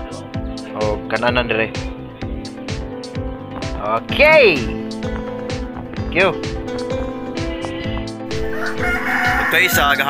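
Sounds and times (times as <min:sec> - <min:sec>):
background music with steady beat: 0:00.0 - 0:10.0
rooster crowing: 0:08.3 - 0:10.0.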